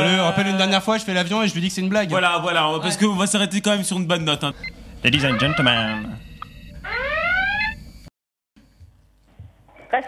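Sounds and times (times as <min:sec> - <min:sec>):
siren-like rising wail: 0:04.6 - 0:08.1.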